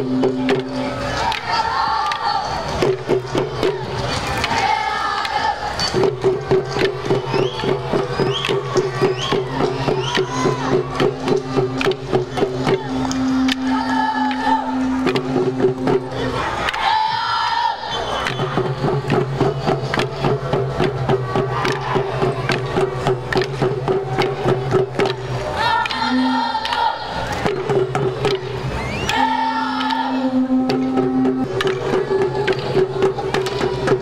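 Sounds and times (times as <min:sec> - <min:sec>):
hand drums beating: 0:00.0 - 0:01.0, 0:02.8 - 0:04.0, 0:05.9 - 0:16.5, 0:18.3 - 0:26.8, 0:27.4 - 0:34.0
group chanting in unison: 0:04.5 - 0:05.7, 0:16.2 - 0:18.0, 0:25.6 - 0:27.2, 0:29.1 - 0:30.6.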